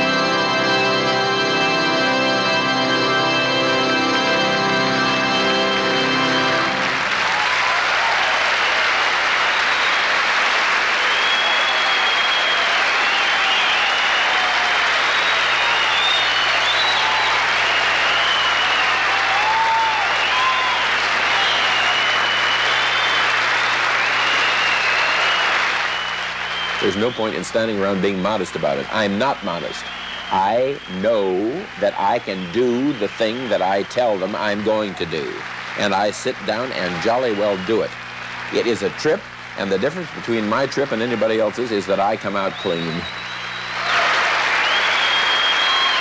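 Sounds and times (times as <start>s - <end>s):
organ chord: 0.0s - 8.0s
audience applauding: 1.1s - 46.0s
whistles and cheers: 4.0s - 46.0s.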